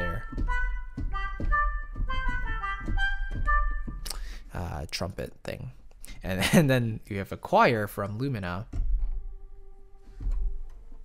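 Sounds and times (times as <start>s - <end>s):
bouncy staccato cartoon woodwind notes: 0.0s - 4.0s.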